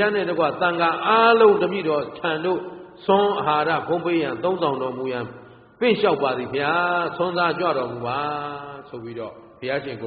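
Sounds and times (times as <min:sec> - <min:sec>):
man delivering a sermon: 0:00.0 - 0:10.0.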